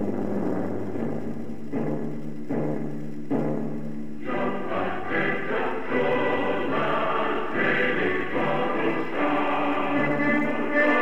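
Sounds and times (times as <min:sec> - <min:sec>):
instrumental ensemble: 0:00.0 - 0:11.0
choir singing an anthem: 0:04.2 - 0:11.0.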